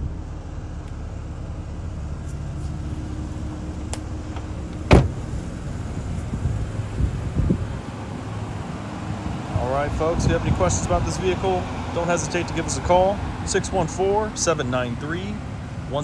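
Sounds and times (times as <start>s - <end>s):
car door shutting: 4.0s - 5.4s.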